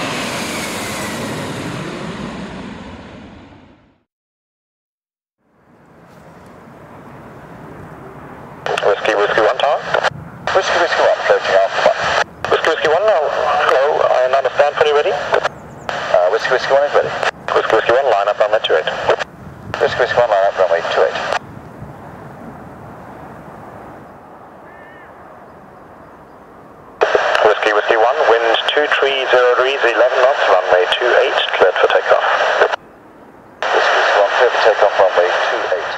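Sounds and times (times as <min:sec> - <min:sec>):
distant jet engines rumbling: 0:05.6 - 0:35.9
radio-filtered voice: 0:08.0 - 0:21.4, 0:27.0 - 0:32.8, 0:33.6 - 0:35.9.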